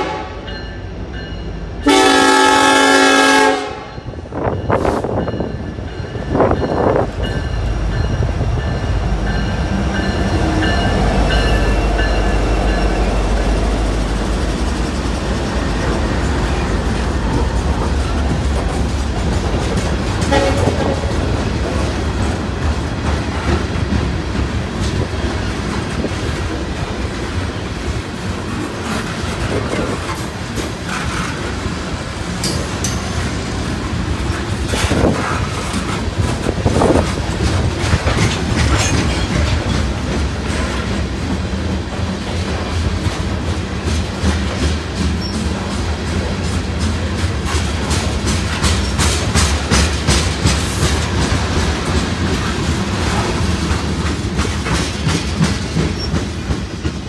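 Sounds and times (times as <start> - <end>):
locomotive air horn: 0.0 - 0.5, 1.8 - 4.0, 20.2 - 21.1
train engine drone: 0.0 - 57.0
train wheels clicking on rails: 4.0 - 57.0.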